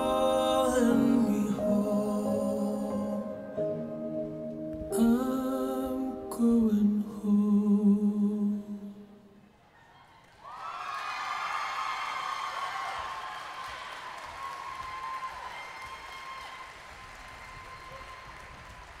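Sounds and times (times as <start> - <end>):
audience cheering and whooping: 9.8 - 19.0
audience applauding: 10.2 - 19.0.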